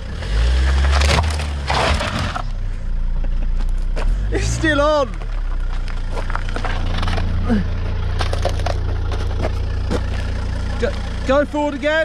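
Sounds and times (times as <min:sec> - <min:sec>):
car engine idling: 0:02.2 - 0:12.0
footsteps crunching on gravel: 0:05.0 - 0:11.2.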